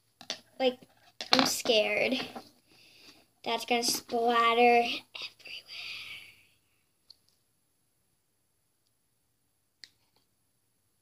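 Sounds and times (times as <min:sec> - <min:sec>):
breathy whisper: 0:05.0 - 0:06.6.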